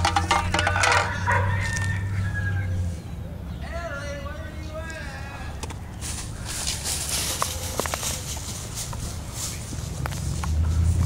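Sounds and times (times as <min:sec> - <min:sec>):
long crowing call: 0:00.5 - 0:02.8.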